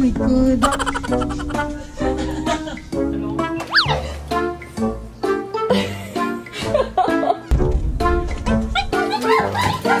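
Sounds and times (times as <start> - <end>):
upbeat background music: 0.0 - 10.0.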